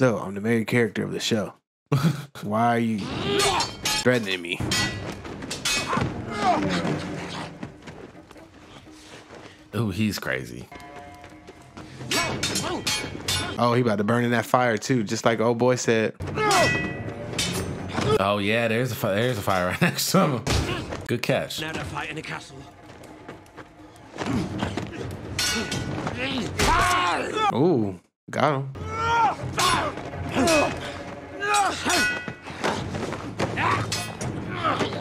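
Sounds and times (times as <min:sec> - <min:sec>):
background music: 0:00.0 - 0:35.0
shouting and grunting voices: 0:02.5 - 0:04.8, 0:05.7 - 0:07.7, 0:12.1 - 0:13.6, 0:16.2 - 0:22.8, 0:23.9 - 0:35.0.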